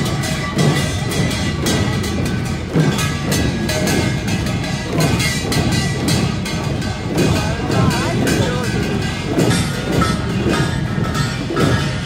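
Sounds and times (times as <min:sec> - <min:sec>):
crowd noise: 0:00.0 - 0:12.0
drum strokes: 0:00.0 - 0:12.0
ringing metallic clangs: 0:00.0 - 0:12.0.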